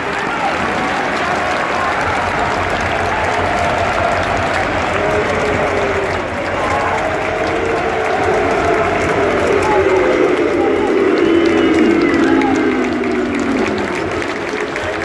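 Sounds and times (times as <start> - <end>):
crowd applauding: 0.0 - 15.0
voices calling out: 0.0 - 15.0.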